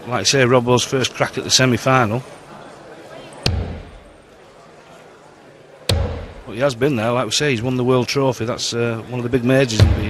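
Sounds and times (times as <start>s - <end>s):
dart striking dartboard: 3.5s - 4.1s, 5.9s - 6.5s.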